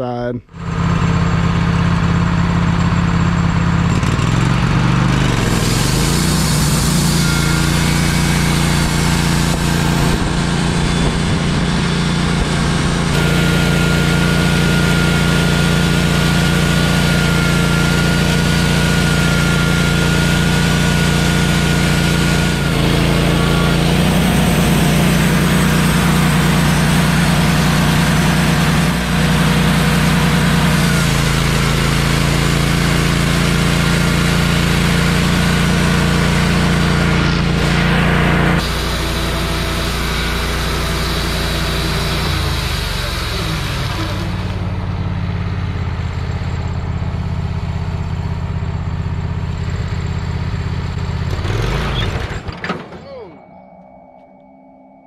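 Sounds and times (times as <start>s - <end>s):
band sawmill engine running: 0.0s - 55.0s
band blade cutting wood: 5.2s - 11.2s.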